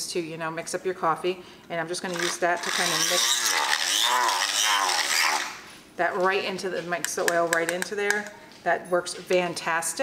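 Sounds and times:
milk frother whirring: 0:02.1 - 0:05.6.

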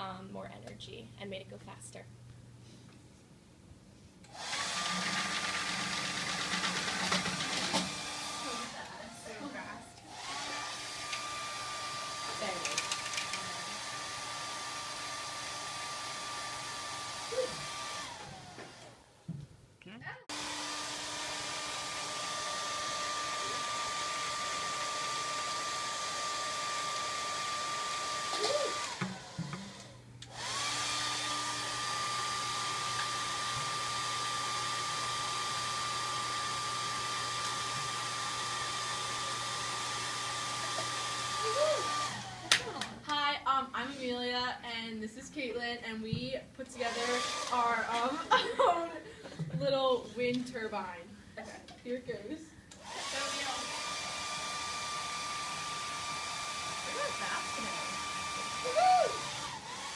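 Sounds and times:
hair dryer whining: 0:04.3 - 0:19.1, 0:20.2 - 0:43.1, 0:46.8 - 0:50.9, 0:52.7 - 0:59.9.

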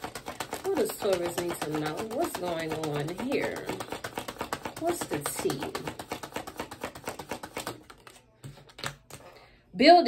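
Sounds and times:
cards being shuffled: 0:00.0 - 0:09.4.

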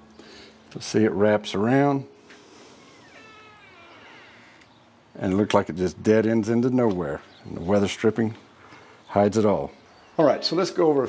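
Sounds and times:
faint drawn-out animal call: 0:02.8 - 0:04.7.

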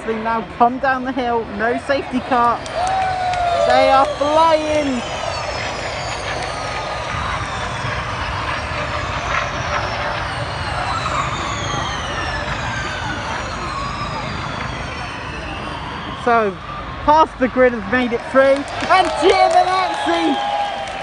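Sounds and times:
crowd noise: 0:00.0 - 0:21.0
electric race cars whining past: 0:00.0 - 0:21.0.

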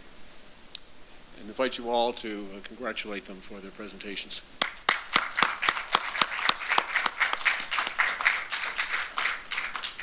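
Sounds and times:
audience applauding: 0:04.6 - 0:10.0
loud individual claps: 0:04.6 - 0:10.0.

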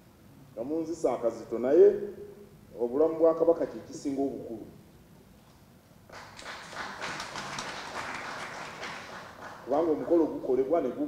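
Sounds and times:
audience applauding: 0:06.1 - 0:10.3.

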